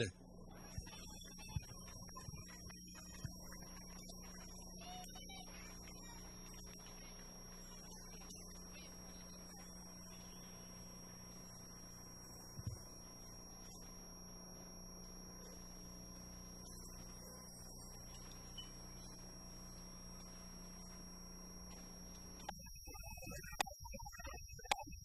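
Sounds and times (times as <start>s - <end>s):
low hum and hiss: 0.0s - 23.6s
faint high-pitched whine: 0.0s - 25.0s.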